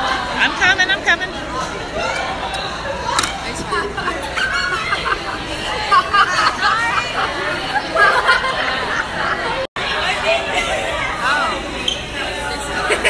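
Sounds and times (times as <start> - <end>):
crowded room hubbub: 0.0 - 13.0
girls chattering: 0.0 - 13.0.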